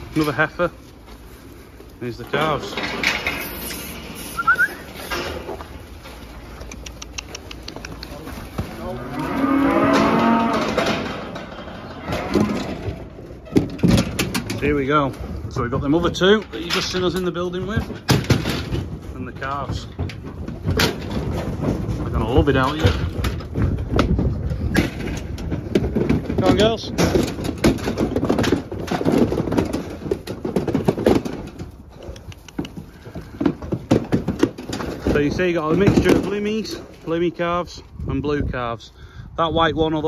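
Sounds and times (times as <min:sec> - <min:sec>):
cattle knocking in metal trailer: 0:02.1 - 0:04.2, 0:08.5 - 0:31.9, 0:32.8 - 0:37.0
cow mooing: 0:08.8 - 0:11.0.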